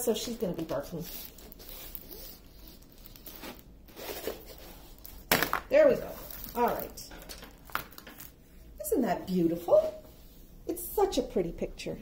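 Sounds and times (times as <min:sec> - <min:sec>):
plastic film rustling and crackling: 0:00.0 - 0:08.4.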